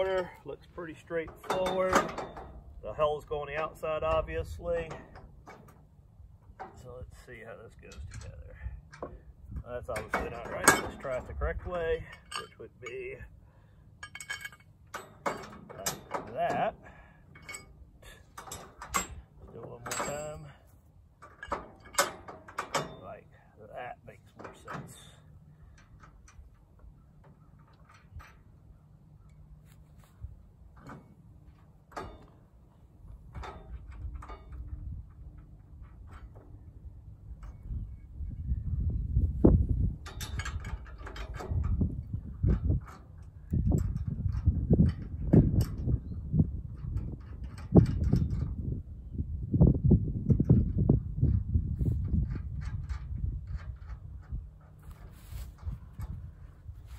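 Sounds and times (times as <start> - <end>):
metal clinks and taps: 14.0 - 16.6.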